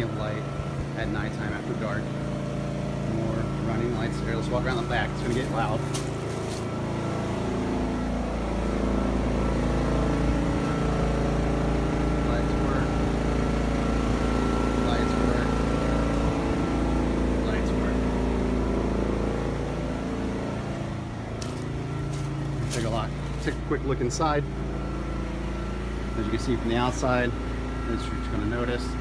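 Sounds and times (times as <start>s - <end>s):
motor running: 0.0s - 29.0s.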